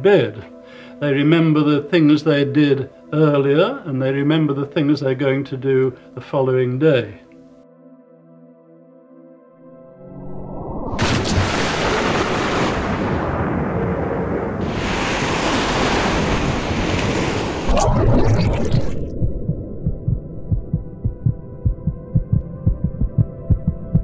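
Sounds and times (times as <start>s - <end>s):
rushing water-like whoosh: 10.1s - 19.5s
rapid low thumps: 17.7s - 24.0s.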